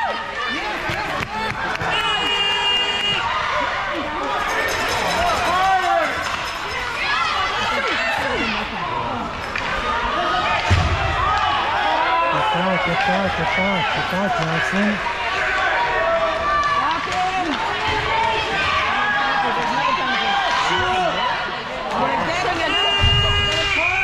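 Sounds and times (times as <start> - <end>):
crowd voices calling out: 0.0 - 24.0
steady whistle: 22.7 - 24.0.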